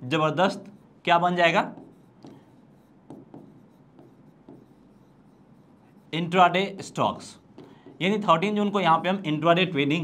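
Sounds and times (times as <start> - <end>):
marker pen writing: 0.5 - 9.2.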